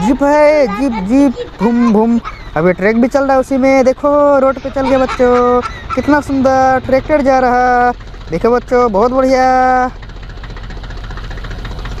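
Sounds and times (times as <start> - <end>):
tractor engine chugging: 0.0 - 12.0.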